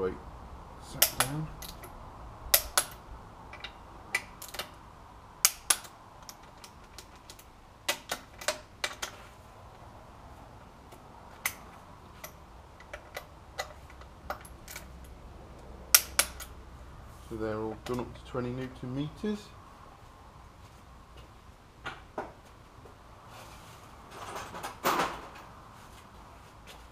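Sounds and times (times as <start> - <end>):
torque wrench clicks: 1.0 - 1.9.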